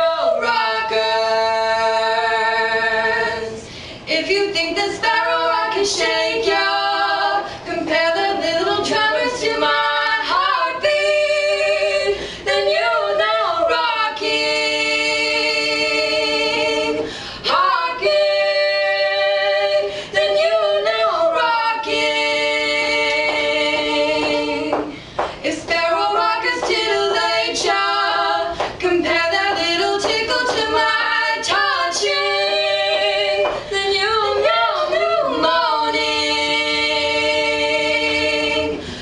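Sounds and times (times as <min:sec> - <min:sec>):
women singing a cappella: 0:00.0 - 0:39.0.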